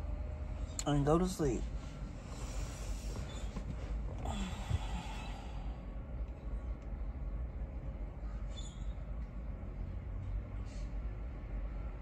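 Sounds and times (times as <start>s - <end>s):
low rumble in car cabin: 0.0s - 12.0s.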